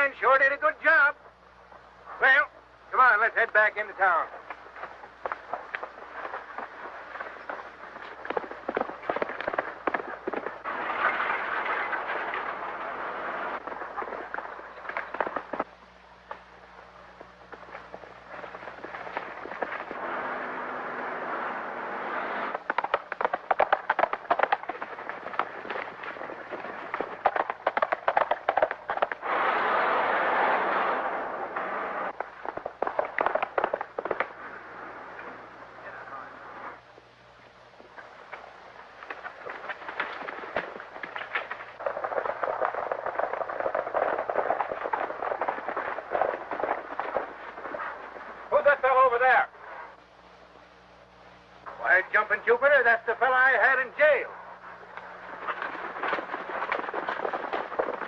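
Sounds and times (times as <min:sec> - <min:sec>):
sharp cracks: 0:04.3 - 0:16.5, 0:22.5 - 0:35.0, 0:54.9 - 0:58.0
loud burst of noise: 0:10.6 - 0:14.6, 0:19.8 - 0:22.7, 0:29.0 - 0:36.8.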